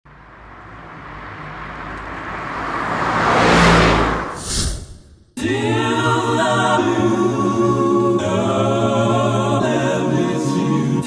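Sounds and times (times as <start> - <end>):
motor vehicle approaching: 0.1 - 5.3.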